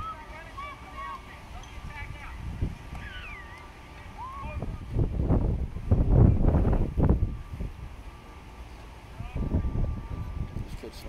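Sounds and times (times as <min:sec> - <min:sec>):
wind buffeting microphone: 0:00.0 - 0:08.1, 0:09.1 - 0:11.0.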